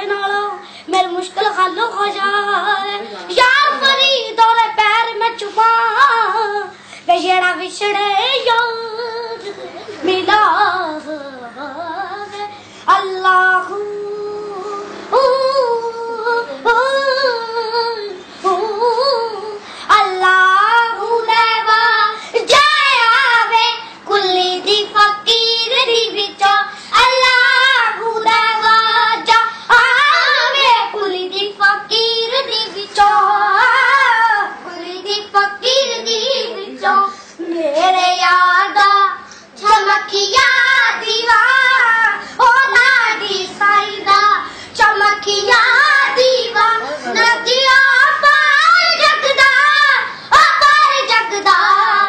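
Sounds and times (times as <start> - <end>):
girls singing unaccompanied: 0.0 - 52.0.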